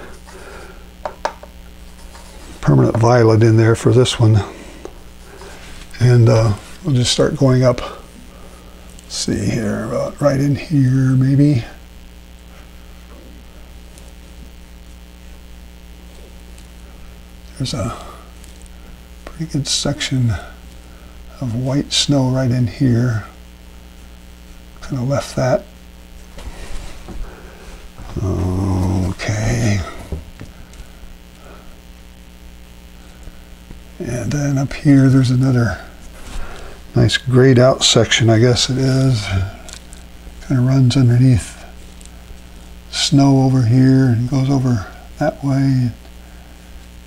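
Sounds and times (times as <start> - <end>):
electrical mains hum: 0.0 - 47.0.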